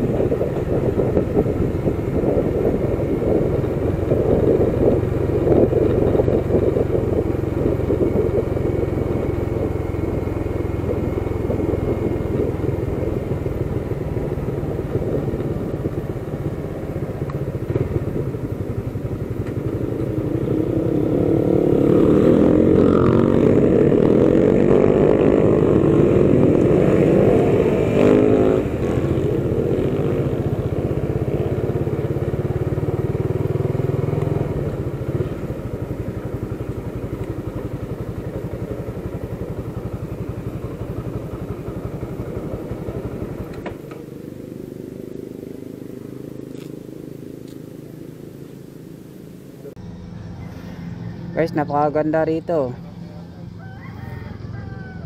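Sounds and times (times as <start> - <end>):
motorcycle engine running: 0.0 - 55.0
road and wind noise: 0.0 - 55.0.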